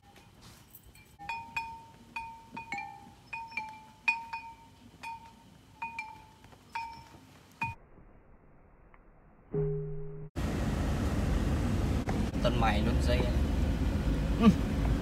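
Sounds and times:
small metal bells ringing: 0:00.0 - 0:07.8.

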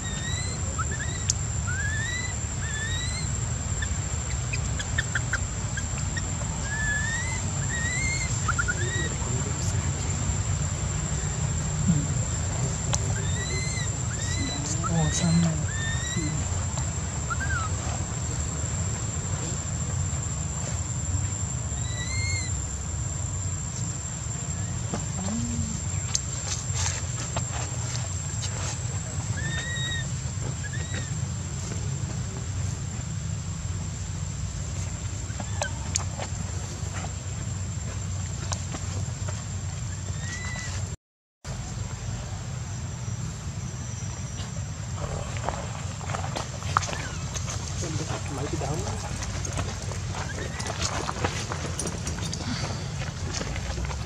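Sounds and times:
infant monkey squeaking calls: 0:00.0 - 0:09.7, 0:11.1 - 0:16.6, 0:17.2 - 0:17.8, 0:21.8 - 0:22.6, 0:29.3 - 0:31.2, 0:35.3 - 0:36.0, 0:39.9 - 0:40.8.

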